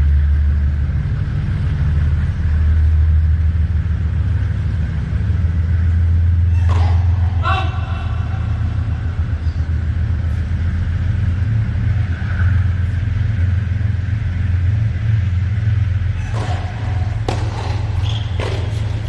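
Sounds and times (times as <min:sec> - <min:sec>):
low rumble: 0:00.0 - 0:19.0
tennis ball knocks: 0:06.6 - 0:07.3, 0:16.2 - 0:19.0.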